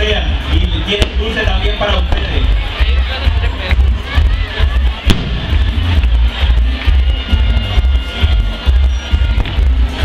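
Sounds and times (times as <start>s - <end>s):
loud music with heavy bass: 0.0s - 10.0s.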